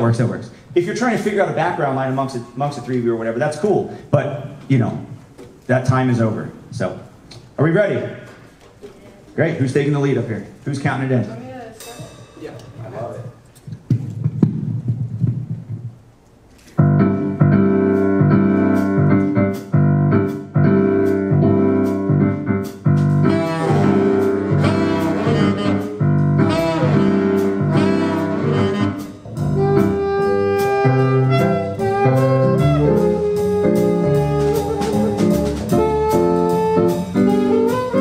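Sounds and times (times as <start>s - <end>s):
drum kit: 11.5s - 38.0s
piano: 11.9s - 38.0s
upright bass: 16.8s - 38.0s
saxophones playing melody: 23.2s - 38.0s.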